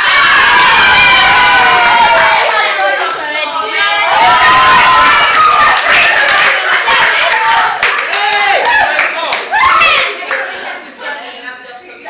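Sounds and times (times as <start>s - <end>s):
excited raised voices: 0.0s - 11.3s
women clapping: 4.8s - 10.6s.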